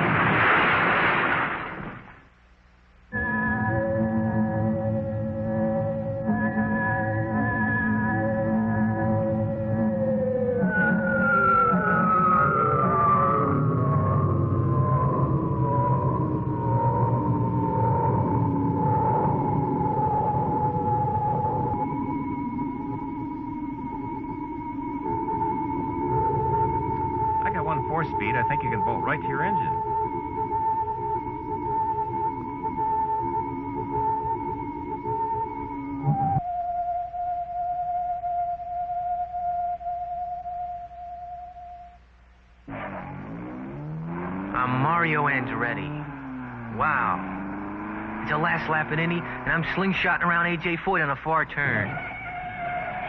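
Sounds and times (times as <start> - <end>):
higher electronic tone: 18.2 - 50.9
noisy sound with shifting pitches: 42.4 - 53.0.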